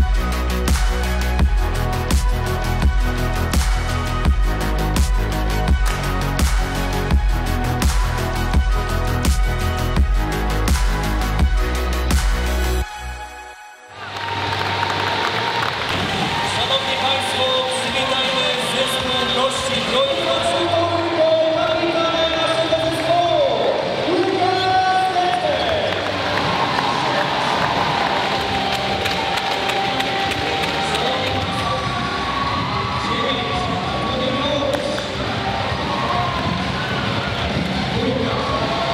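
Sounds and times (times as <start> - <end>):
electronic background music: 0.0 - 38.9
large crowd in arena: 0.0 - 38.9.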